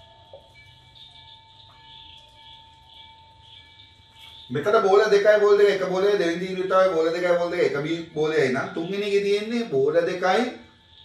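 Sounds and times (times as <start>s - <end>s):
high-pitched electrical whine: 0.0s - 11.0s.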